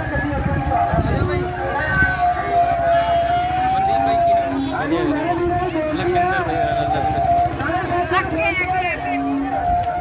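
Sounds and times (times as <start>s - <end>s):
siren wailing: 0.0s - 4.7s, 6.4s - 10.0s
crowd noise: 0.0s - 10.0s.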